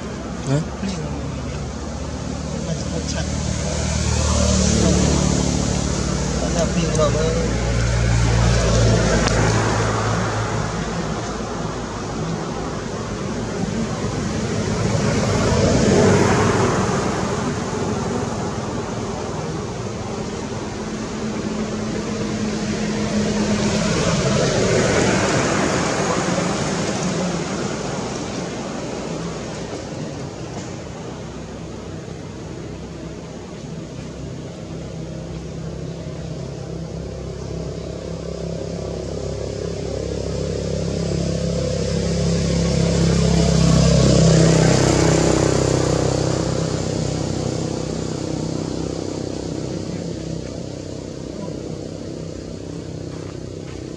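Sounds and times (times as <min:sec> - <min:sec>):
vehicles passing on road: 0:00.0 - 0:53.9.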